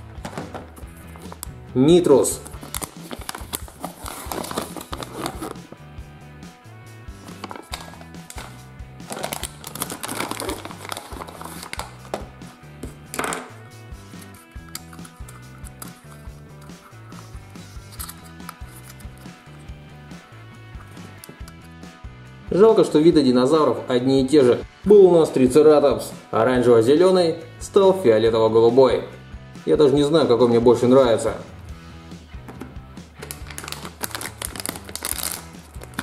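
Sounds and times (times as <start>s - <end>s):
background music with bass line: 0.0s - 36.0s
foil packet tearing: 2.5s - 5.6s, 7.3s - 12.1s, 17.8s - 19.0s, 33.2s - 36.0s.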